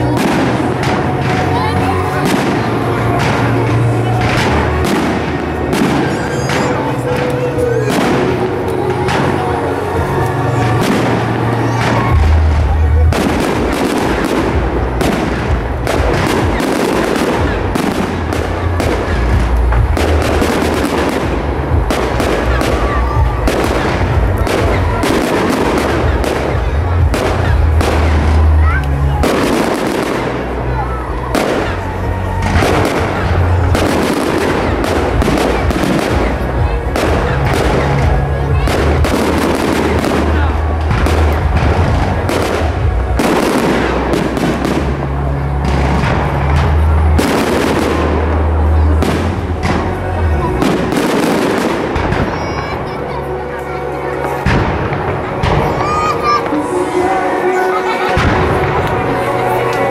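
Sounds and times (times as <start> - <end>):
firework bangs and crackles: 0.0 - 59.9
music with heavy bass: 0.0 - 59.9.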